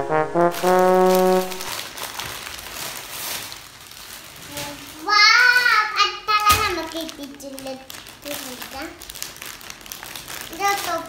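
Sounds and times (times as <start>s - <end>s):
held brass note: 0.0s - 1.7s
plastic bag crinkling: 0.5s - 11.0s.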